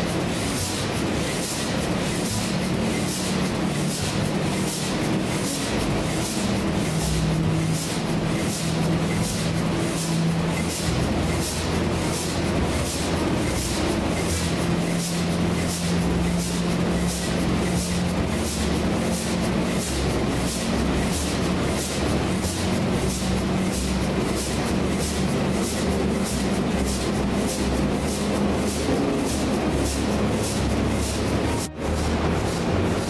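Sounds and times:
diesel engine running slowly: 0:00.0 - 0:33.0.

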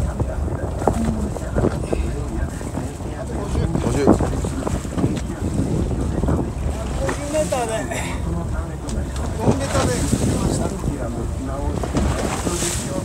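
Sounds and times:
steady low rumble: 0:00.0 - 0:13.0
wind buffeting microphone: 0:00.0 - 0:13.0.

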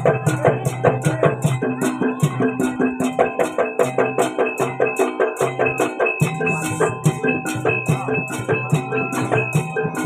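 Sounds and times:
drum strokes: 0:00.0 - 0:10.0
ringing metallophone: 0:00.0 - 0:10.0.

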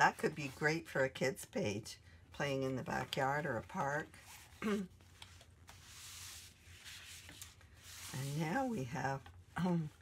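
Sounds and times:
paper pages rustling on a mat: 0:02.8 - 0:09.5.

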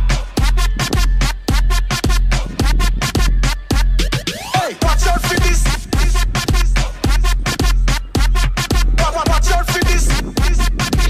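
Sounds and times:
electronic music with heavy bass: 0:00.0 - 0:11.0.

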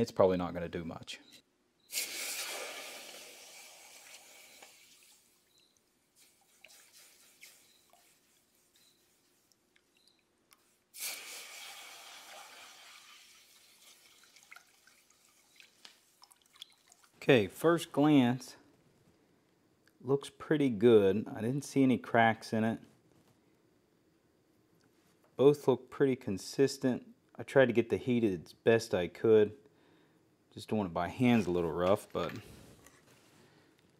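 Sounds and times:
hot steel hissing in water: 0:01.9 - 0:05.4, 0:10.9 - 0:14.4
faint drips and ticks: 0:04.0 - 0:10.6, 0:13.4 - 0:17.3.

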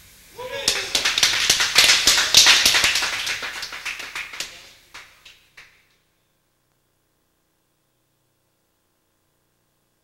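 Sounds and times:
hand clapping: 0:00.6 - 0:05.8.

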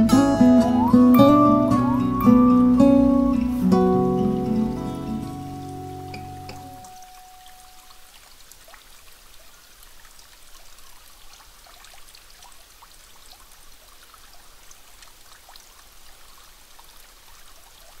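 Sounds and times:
water trickling and dripping: 0:00.0 - 0:18.0.

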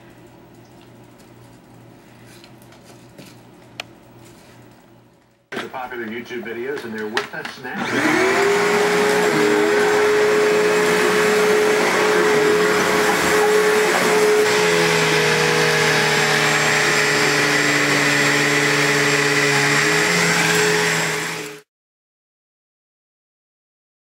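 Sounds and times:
vacuum cleaner whining: 0:06.7 - 0:21.7.

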